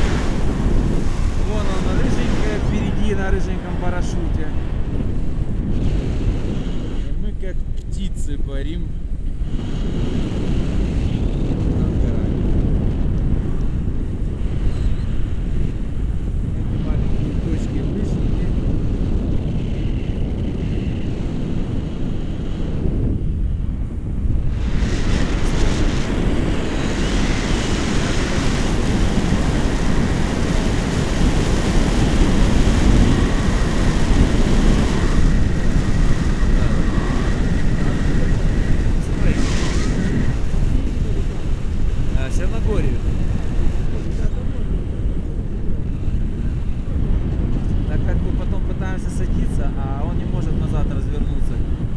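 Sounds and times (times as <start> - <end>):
airflow buffeting microphone: 0.0 - 51.9.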